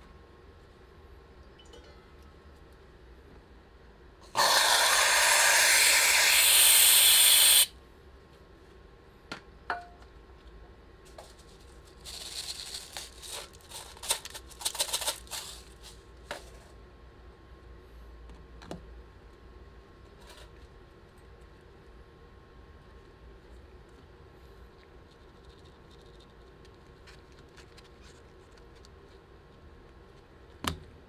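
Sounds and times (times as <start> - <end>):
whipped cream dispenser hissing: 4.2 - 7.7
sprinkles pattering: 12.0 - 15.9.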